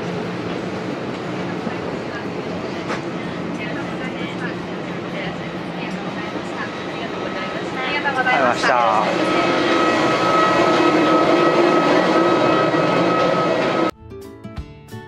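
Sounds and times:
airliner machinery hum: 0:00.0 - 0:13.9
constant high whine: 0:00.0 - 0:13.9.

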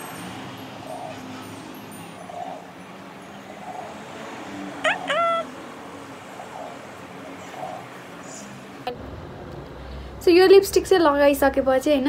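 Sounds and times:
steady background noise: 0:00.0 - 0:12.0
rising animal calls: 0:04.7 - 0:05.7.

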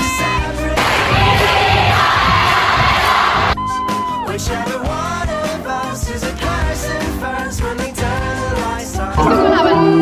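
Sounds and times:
crowd cheering and shouting: 0:09.2 - 0:10.0.

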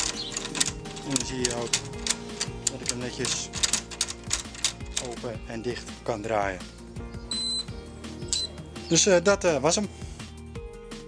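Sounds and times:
soft background music: 0:00.0 - 0:11.0
high electronic beeps: 0:08.3 - 0:08.5.

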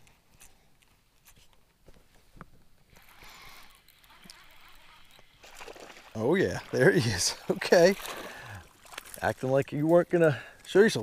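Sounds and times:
water splashing and sloshing: 0:02.9 - 0:10.7.

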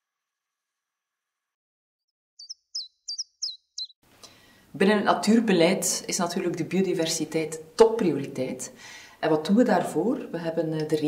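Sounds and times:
small bird chirping: 0:02.4 - 0:04.0.

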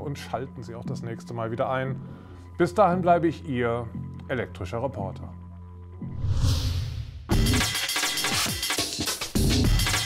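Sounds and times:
electronic music with drums: 0:07.3 - 0:10.0.

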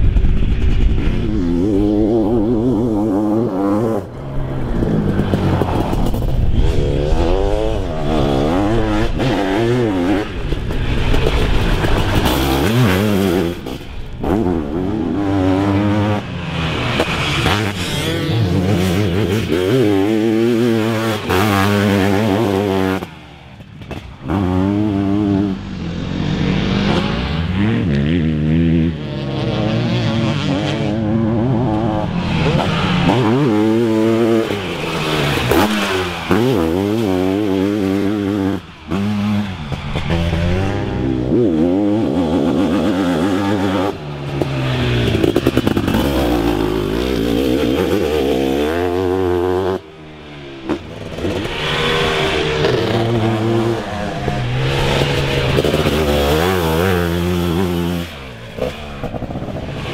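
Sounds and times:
motorcycle engine revving hard: 0:00.0 - 0:59.9.

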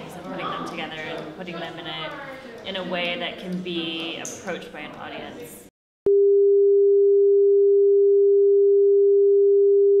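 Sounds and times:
electronic sine tone: 0:06.1 - 0:10.0.

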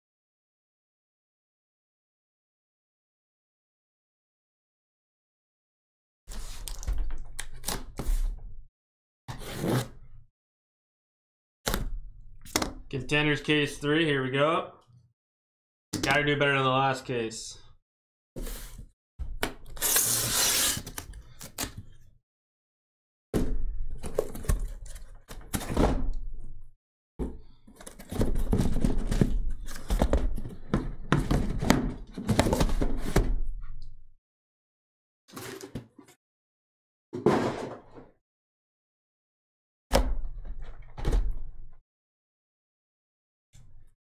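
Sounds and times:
packing tape tearing: 0:19.6 - 0:21.7.

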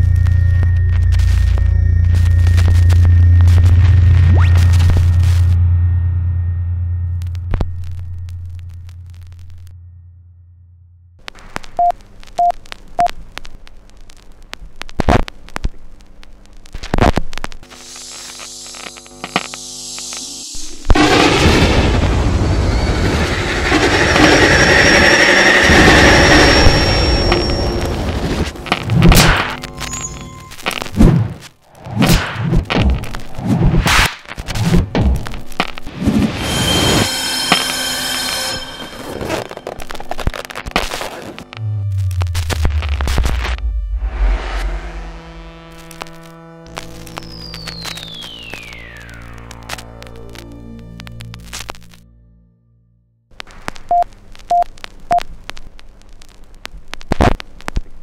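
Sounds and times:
high ringing tones: 0:00.0 - 0:10.9, 0:22.2 - 0:31.0, 0:36.4 - 0:40.6
faint hum: 0:00.0 - 0:32.0, 0:34.2 - 0:52.8
crackly film soundtrack clicks: 0:11.2 - 0:19.6, 0:27.3 - 0:35.9, 0:45.8 - 0:52.0, 0:53.4 - 0:58.0
noisy hiss: 0:11.2 - 0:22.9, 0:53.4 - 0:58.0
short electronic beeps: 0:11.8 - 0:12.5, 0:53.9 - 0:54.6
harsh loud screech: 0:17.8 - 0:31.0, 0:35.8 - 0:41.4, 0:44.0 - 0:50.3.

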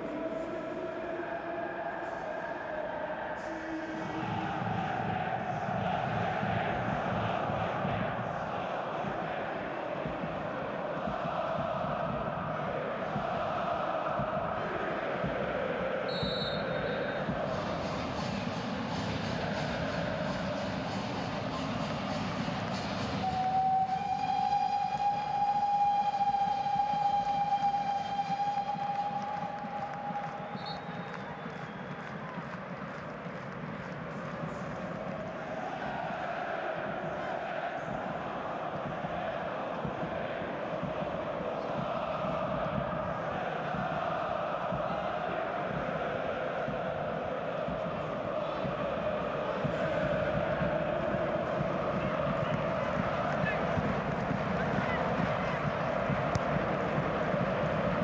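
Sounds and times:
stadium crowd singing and chanting: 0:00.0 - 0:58.0
shrill whistle: 0:16.1 - 0:17.2, 0:23.0 - 0:32.2.

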